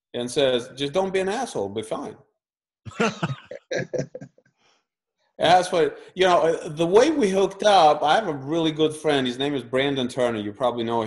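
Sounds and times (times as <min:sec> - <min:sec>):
man coughing: 0:02.9 - 0:04.2.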